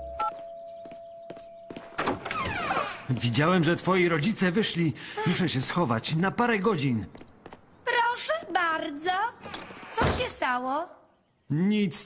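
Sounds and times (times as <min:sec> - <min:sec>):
doorbell chime: 0:00.0 - 0:01.9
footsteps on wooden floor: 0:00.3 - 0:03.5.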